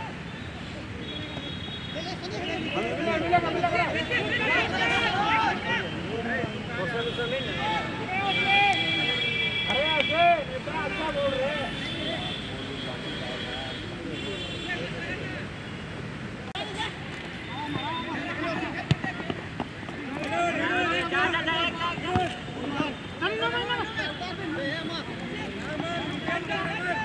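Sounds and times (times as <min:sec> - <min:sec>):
men shouting and calling: 0:02.0 - 0:12.3, 0:16.6 - 0:27.0.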